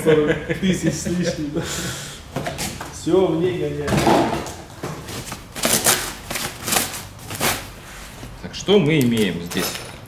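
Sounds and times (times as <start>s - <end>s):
plastic bag rustling: 5.1s - 8.4s.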